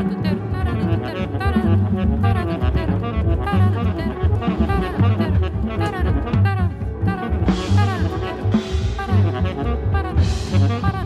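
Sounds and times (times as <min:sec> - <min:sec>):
drums: 0:00.0 - 0:11.0
jazz bass line: 0:00.0 - 0:11.0
piano: 0:00.0 - 0:11.0
tenor saxophone melody: 0:00.0 - 0:11.0.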